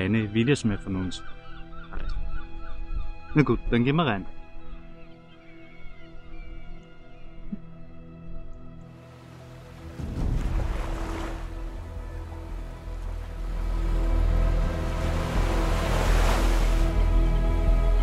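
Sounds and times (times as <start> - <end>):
music with held tones: 11.5 - 18.0.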